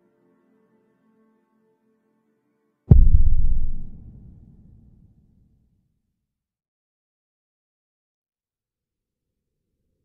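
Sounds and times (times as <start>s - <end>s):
explosion boom: 2.9s - 4.7s.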